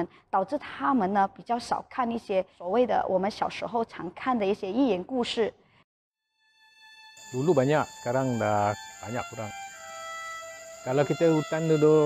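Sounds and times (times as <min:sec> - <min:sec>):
insects droning: 0:06.5 - 0:12.0
man speaking: 0:07.4 - 0:09.5, 0:10.9 - 0:12.0.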